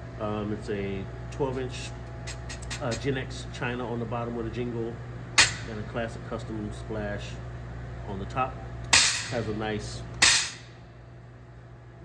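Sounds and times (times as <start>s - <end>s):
stick hitting cymbal stack: 10.2s - 10.7s.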